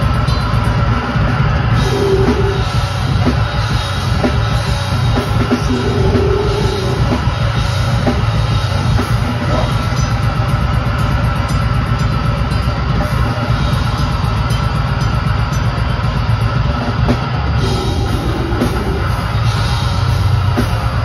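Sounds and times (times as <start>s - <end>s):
drum kit: 0.0s - 21.0s
live metal band playing: 0.0s - 21.0s.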